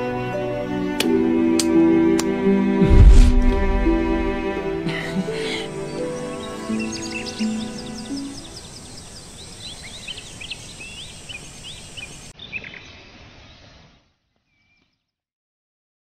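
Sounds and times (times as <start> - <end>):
steady outdoor hiss: 0.0 - 14.8
low held music notes: 0.7 - 8.4
birds chirping: 4.7 - 13.7.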